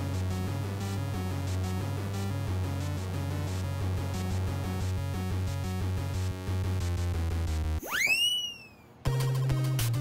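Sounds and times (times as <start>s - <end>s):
looping electronic music: 0.0s - 7.8s
synthesized swooping whistle: 7.8s - 8.9s.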